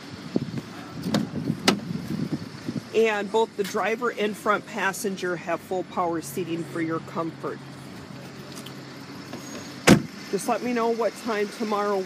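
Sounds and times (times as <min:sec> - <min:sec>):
car door slamming: 0:01.0 - 0:01.9, 0:09.3 - 0:10.2.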